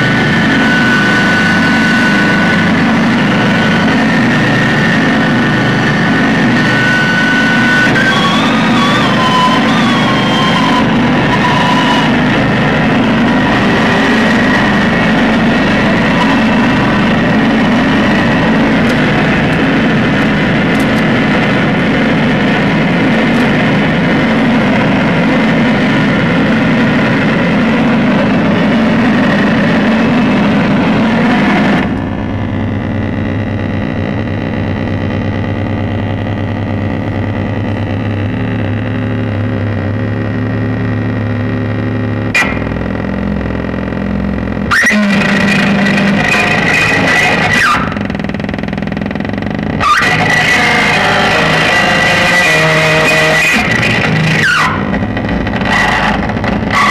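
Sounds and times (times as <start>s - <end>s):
harsh distorted electronic noise: 0.0s - 56.9s
low droning hum: 0.0s - 56.9s
sharp click: 42.3s - 42.8s.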